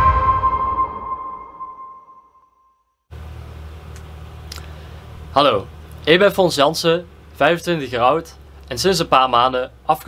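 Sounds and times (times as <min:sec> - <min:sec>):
electronic jingle sustained tone: 0:00.0 - 0:02.5.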